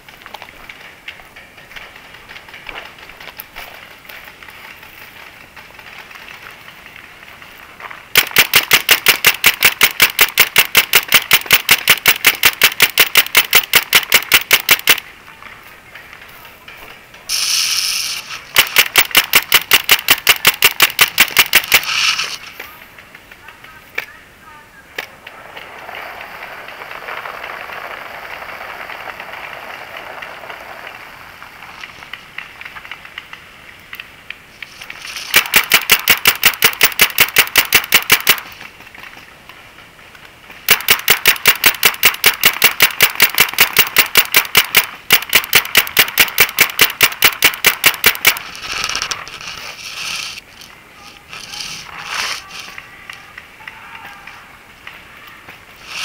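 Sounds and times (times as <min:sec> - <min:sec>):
paintball marker rapid firing: 0:08.1 - 0:15.1, 0:17.3 - 0:23.2, 0:34.7 - 0:38.7, 0:40.6 - 0:50.3.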